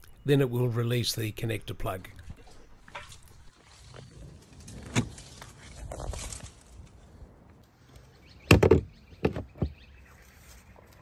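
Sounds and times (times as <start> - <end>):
plastic knocks: 8.5 - 9.8.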